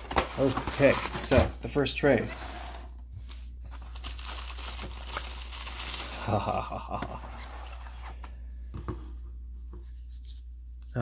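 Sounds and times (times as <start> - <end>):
plastic bag rustling: 0.0 - 6.6
low steady hum: 0.0 - 11.0.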